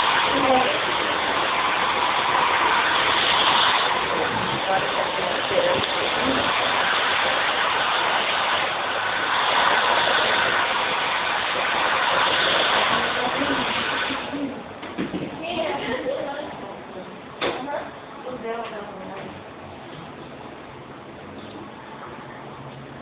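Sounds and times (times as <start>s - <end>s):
hair dryer blowing: 0.0s - 14.5s.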